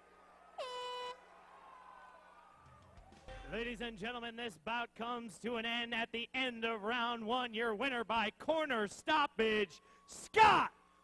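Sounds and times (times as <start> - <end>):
horn blast: 0.6 - 1.3.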